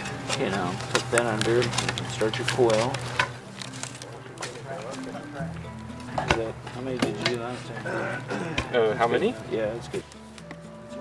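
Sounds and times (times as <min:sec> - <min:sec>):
quiet talking: 0:03.7 - 0:10.0.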